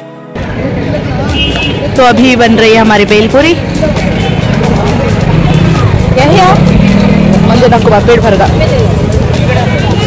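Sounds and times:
background music: 0.0 - 10.0
low traffic hum: 0.4 - 10.0
voices: 0.4 - 10.0.

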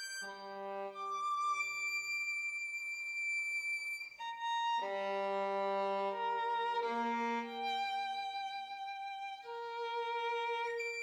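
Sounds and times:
solo violin melody: 0.0 - 11.0.

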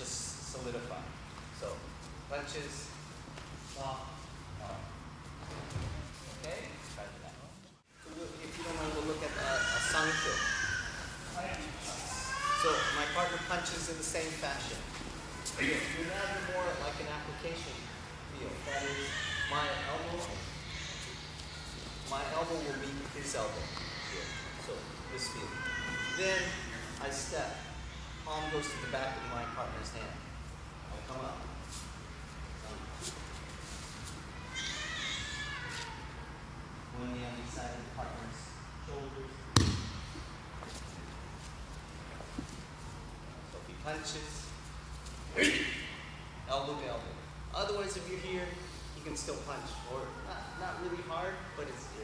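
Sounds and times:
man speaking: 6.3 - 10.5, 11.3 - 14.9, 15.6 - 20.5, 46.5 - 52.0.

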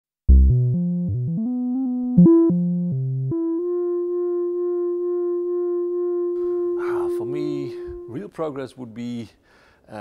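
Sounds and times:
sustained synthesizer note: 2.2 - 8.2.

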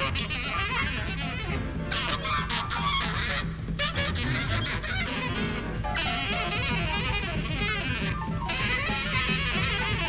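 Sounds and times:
percussion: 0.0 - 10.0
piano: 0.0 - 10.0
saxophone honking squeals: 0.7 - 10.0.

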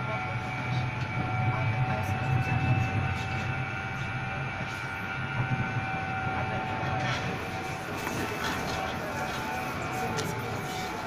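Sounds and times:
tram rumbling: 0.0 - 11.0.

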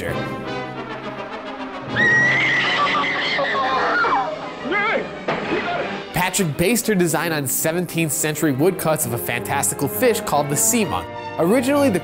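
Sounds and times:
orchestral film music: 0.0 - 12.0
woman screaming: 1.9 - 4.4.

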